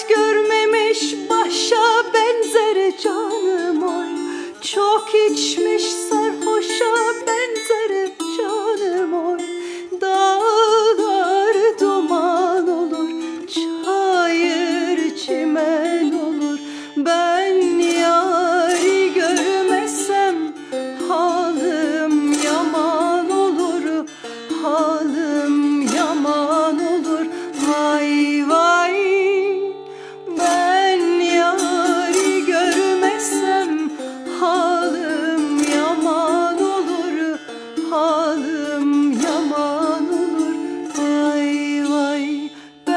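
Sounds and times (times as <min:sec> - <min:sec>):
plucked long-necked lute: 0:00.0 - 0:42.9
woman singing folk song: 0:00.0 - 0:42.9.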